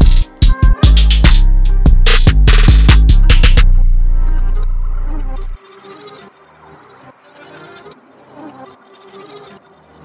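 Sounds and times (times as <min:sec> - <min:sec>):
low bass note: 0:01.9 - 0:05.6.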